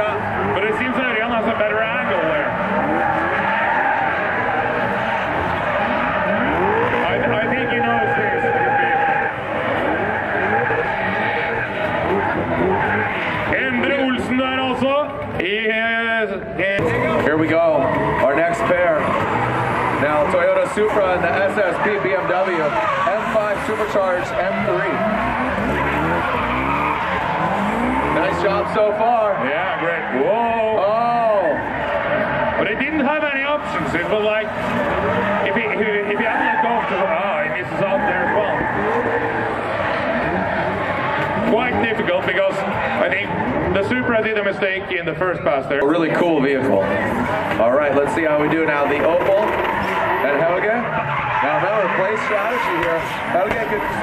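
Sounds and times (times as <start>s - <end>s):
car engines revving: 0.0s - 54.0s
tyres squealing and skidding: 0.0s - 54.0s.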